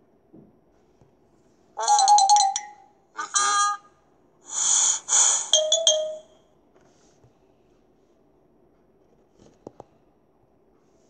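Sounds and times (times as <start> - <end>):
electronic chime sound effects: 1.8 - 3.7, 5.4 - 6.4.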